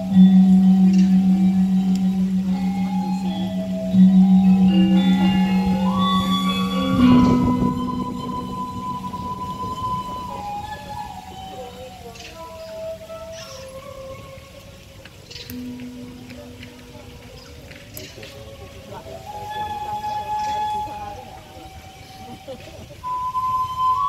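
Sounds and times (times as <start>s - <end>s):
large gong struck: 0.0s - 11.2s
metallophone melody: 0.0s - 24.0s.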